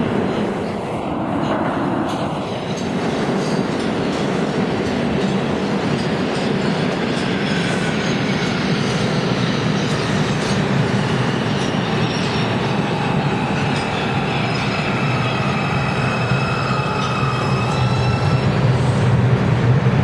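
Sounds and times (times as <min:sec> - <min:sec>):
subway train wheels clattering: 0:00.0 - 0:20.0.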